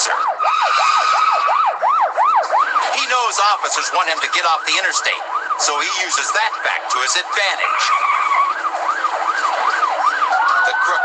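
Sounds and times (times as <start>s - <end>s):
police siren yelping: 0.0s - 11.0s.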